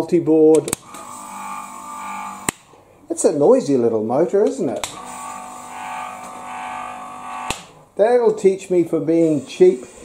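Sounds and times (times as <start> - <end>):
pump motor humming and whining: 5.0 - 7.5.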